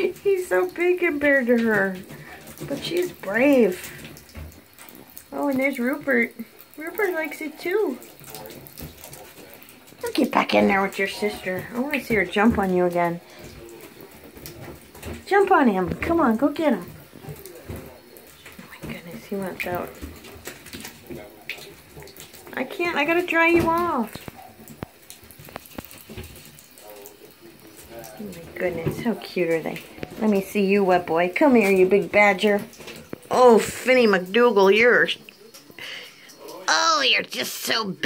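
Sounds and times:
tap water splashing into tub: 0:00.0 - 0:38.0.

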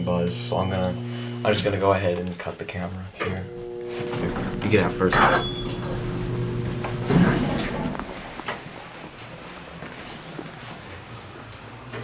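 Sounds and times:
handling noise: 0:03.5 - 0:11.0
shuffling steps: 0:03.7 - 0:11.8.

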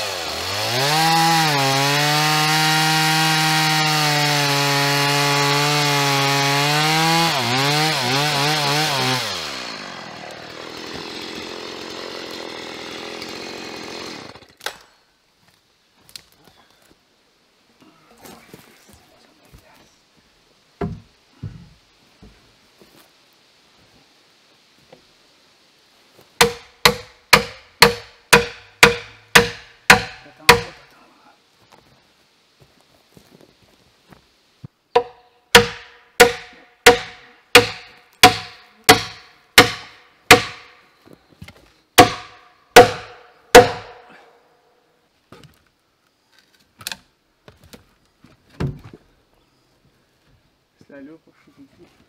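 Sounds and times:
heavy dull wooden thuds: 0:20.8 - 0:22.4
heavy blows striking a log: 0:26.4 - 0:30.8, 0:35.0 - 0:40.7, 0:42.0 - 0:44.2
log scraping and shuffling: 0:31.5 - 0:34.8, 0:41.0 - 0:41.8, 0:45.2 - 0:52.0.

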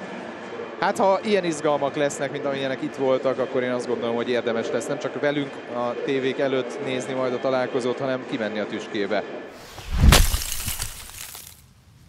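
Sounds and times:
cracking and shattering: 0:09.6 - 0:11.7.

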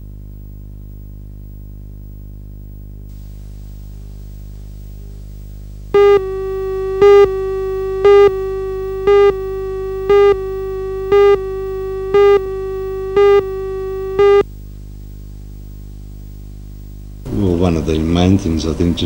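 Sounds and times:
steady buzzy tone: 0:00.0 - 0:17.7
countdown beeps: 0:06.0 - 0:14.4.

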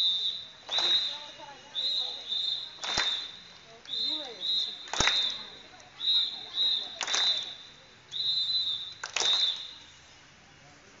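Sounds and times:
whistle blasts: 0:00.0 - 0:10.2
sharp cracks: 0:02.8 - 0:04.0, 0:04.8 - 0:05.5.

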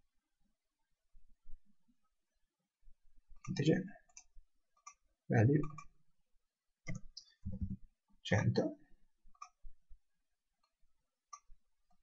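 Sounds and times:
mouse and keyboard clicks: 0:05.6 - 0:06.0, 0:06.8 - 0:07.8, 0:09.3 - 0:09.6.

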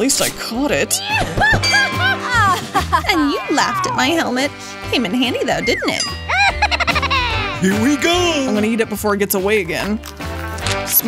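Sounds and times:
background music: 0:00.0 - 0:11.0
woman laughing loudly: 0:01.2 - 0:04.1, 0:05.7 - 0:07.6.

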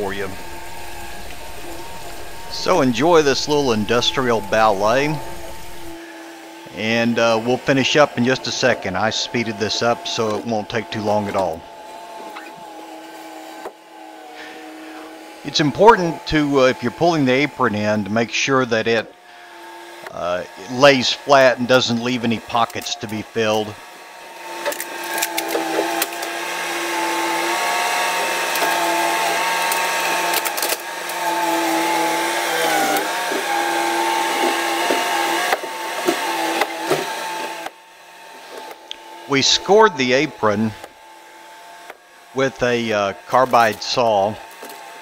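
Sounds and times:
engine hum with whine: 0:00.0 - 0:06.0
loader engine and hydraulics: 0:00.0 - 0:12.6.

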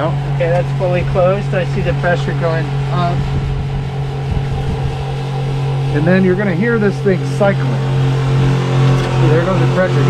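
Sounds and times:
electric pumps humming: 0:00.0 - 0:10.0.

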